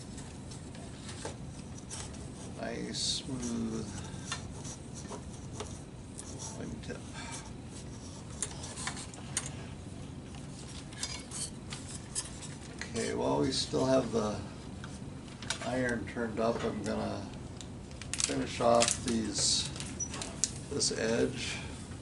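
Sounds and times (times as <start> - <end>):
low steady hum: 0.0 - 22.0
plastic film crackling: 17.9 - 20.6.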